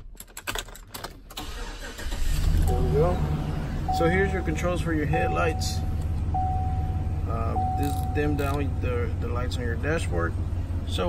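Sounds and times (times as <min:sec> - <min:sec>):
key clicking and jingling: 0:00.0 - 0:01.3, 0:07.6 - 0:08.8
engine starting: 0:01.3 - 0:03.1.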